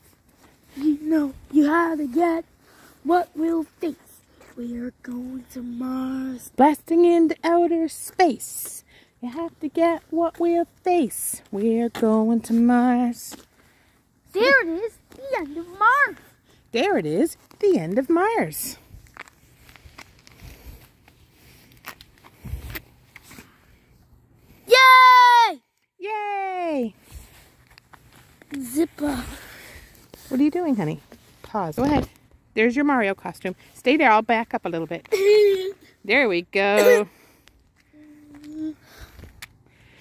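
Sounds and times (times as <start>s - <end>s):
faint footsteps: 0.0s - 23.6s, 26.8s - 36.0s, 37.0s - 40.0s.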